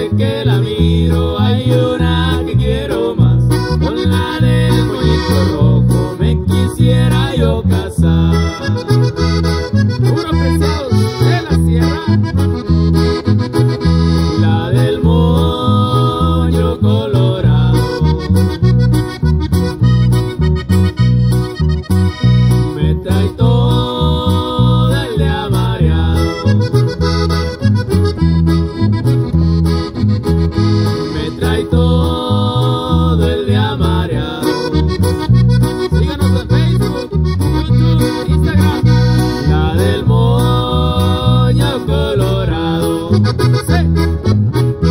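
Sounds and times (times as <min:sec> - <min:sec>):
accordion melody: 0:00.0 - 0:44.9
electric bass: 0:00.0 - 0:44.9
strummed acoustic guitar: 0:00.0 - 0:44.9.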